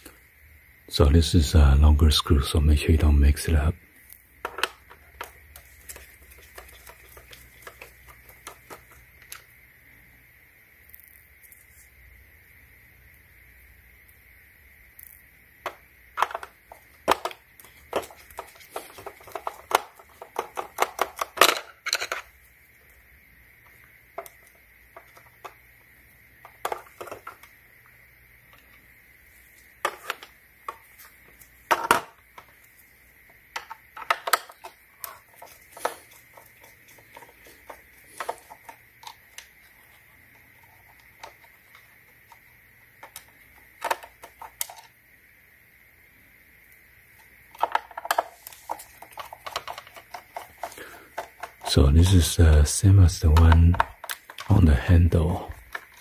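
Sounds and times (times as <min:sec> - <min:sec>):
plastic parts clicking: 0:04.1 - 0:09.5, 0:15.0 - 0:22.4, 0:26.4 - 0:27.5, 0:29.8 - 0:32.7, 0:33.5 - 0:40.0, 0:40.6 - 0:45.0, 0:47.5 - 0:51.7, 0:53.3 - 0:54.6, 0:55.5 - 0:56.0.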